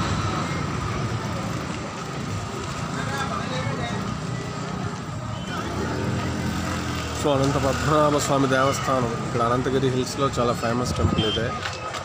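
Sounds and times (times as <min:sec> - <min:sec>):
chatter of people: 0:00.0 - 0:12.0
traffic rumble: 0:00.0 - 0:12.0.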